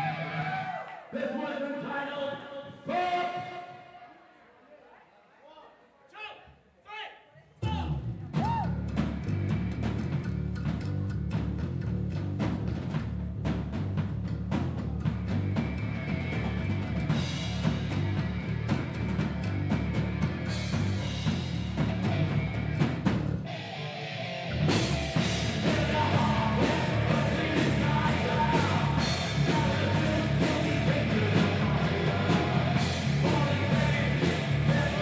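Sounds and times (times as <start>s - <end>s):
live rock band playing: 14.5s - 35.0s.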